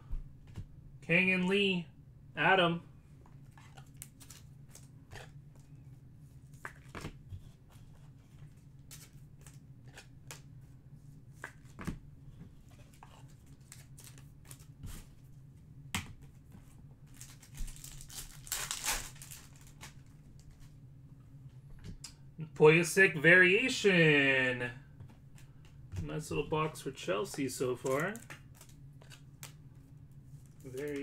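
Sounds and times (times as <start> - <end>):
faint low hum: 0.0 - 31.0
cards and wrappers clicking: 17.1 - 20.0, 27.2 - 29.6, 30.6 - 31.0
foil wrapper crinkling and tearing: 17.1 - 20.1, 27.7 - 29.6.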